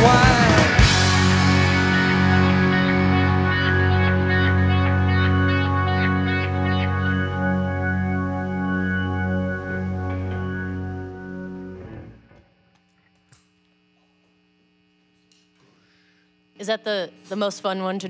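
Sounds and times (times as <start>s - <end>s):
distorted rock guitar chord: 0.0s - 12.7s
faint amplifier hum: 0.0s - 18.0s.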